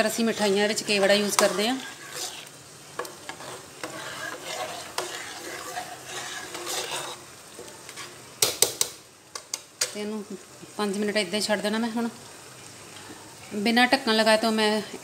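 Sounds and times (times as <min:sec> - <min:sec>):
ladle stirring in metal pot: 0:00.0 - 0:08.6.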